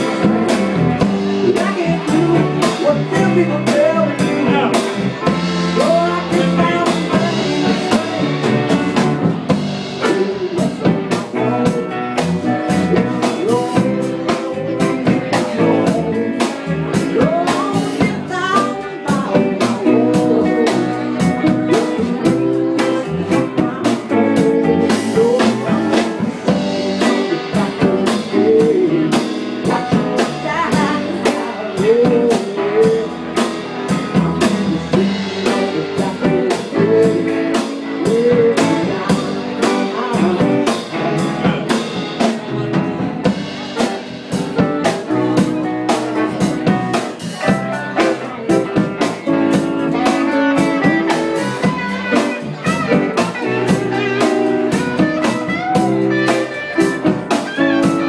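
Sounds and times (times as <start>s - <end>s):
man singing into a microphone: 0.0s - 9.1s, 9.9s - 58.0s
live band playing soul music: 0.0s - 58.0s.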